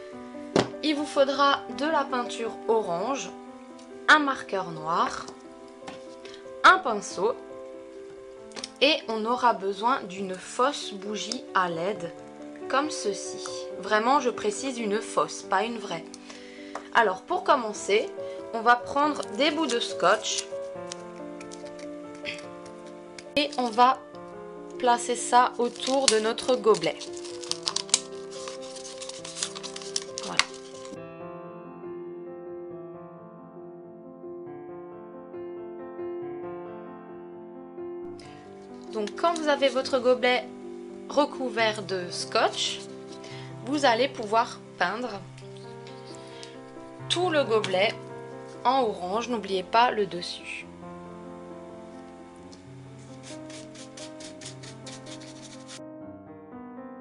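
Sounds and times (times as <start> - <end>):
background piano music: 0.0 - 57.0
masking tape crinkling: 19.2 - 23.9, 25.6 - 31.0, 53.0 - 55.8
paintbrush scratchy strokes: 53.0 - 55.8.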